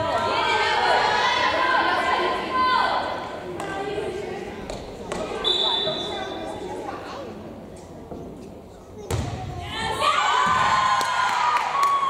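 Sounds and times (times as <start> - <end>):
voices in a hall: 0.0 - 12.0
referee's whistle: 5.4 - 6.5.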